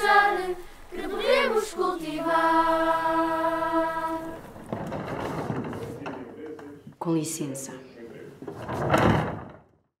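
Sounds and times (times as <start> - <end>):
wooden doors closing: 3.4 - 7.0, 8.3 - 9.8.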